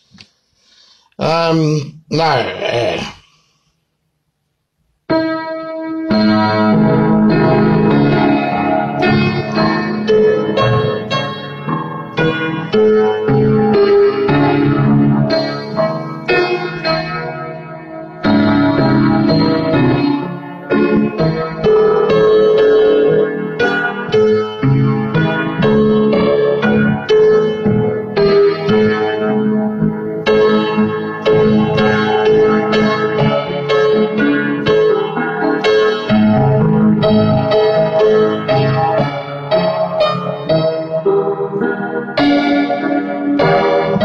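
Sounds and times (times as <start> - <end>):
piano chords: 5.1 - 44.0.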